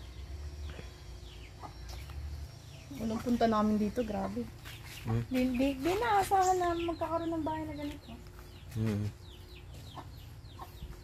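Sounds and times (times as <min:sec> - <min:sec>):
chicks peeping: 0:00.0 - 0:11.0
hen clucking: 0:01.4 - 0:02.0, 0:02.9 - 0:08.0, 0:08.6 - 0:11.0.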